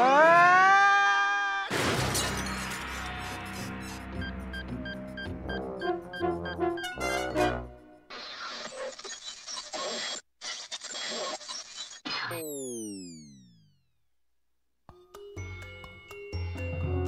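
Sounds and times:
cartoon music with brass: 4.1 - 8.1.

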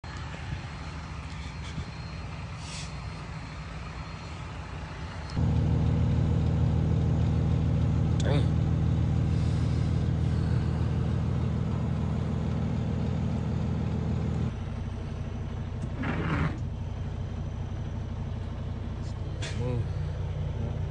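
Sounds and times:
diesel truck engine idling: 0.0 - 20.9.

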